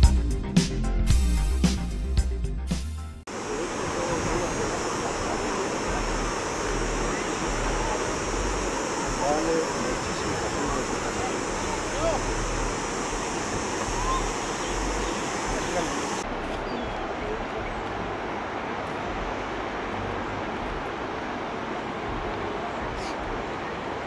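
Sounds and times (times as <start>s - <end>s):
intro music: 0.0s - 3.2s
river rushing over rapids: 3.3s - 24.0s.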